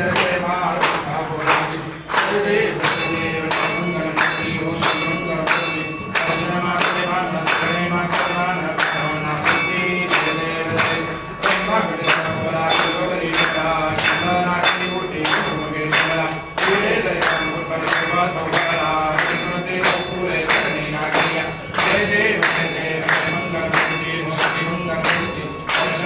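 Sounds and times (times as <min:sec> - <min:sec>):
clapping in time: 0:00.0 - 0:26.0
group singing: 0:00.0 - 0:26.0.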